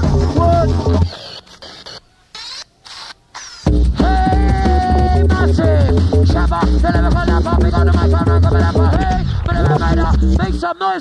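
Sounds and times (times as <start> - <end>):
drum and bass music: 0.0 - 2.6, 3.4 - 10.7
high squeaky sliding sounds: 0.5 - 3.8.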